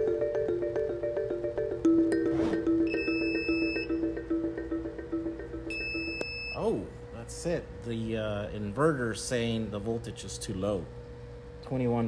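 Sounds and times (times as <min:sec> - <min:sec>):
background music with mallet notes: 0:00.0 - 0:06.6
high-pitched alarm beep: 0:02.8 - 0:04.2, 0:05.7 - 0:06.7.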